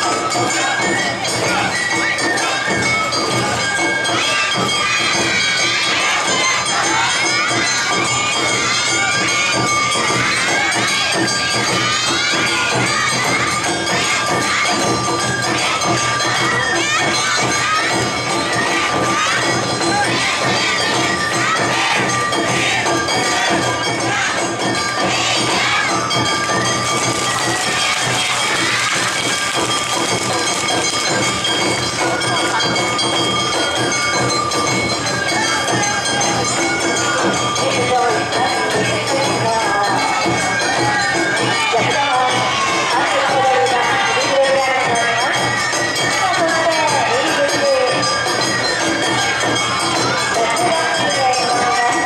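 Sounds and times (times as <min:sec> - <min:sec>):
crowd noise: 0:00.0 - 0:52.0
drums: 0:00.0 - 0:52.0
festival band music: 0:00.0 - 0:52.0
many voices shouting calls: 0:00.0 - 0:52.0
metallic percussion: 0:00.0 - 0:52.0.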